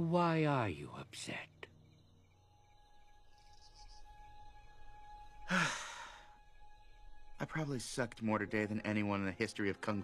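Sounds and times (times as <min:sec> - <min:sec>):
soft sustained film score: 0:00.0 - 0:10.0
cartoon panda sighing: 0:05.5 - 0:06.1.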